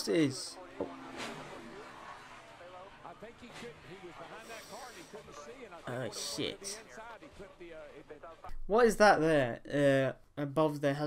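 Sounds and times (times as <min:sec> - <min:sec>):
race car crash audio: 0:00.6 - 0:04.4.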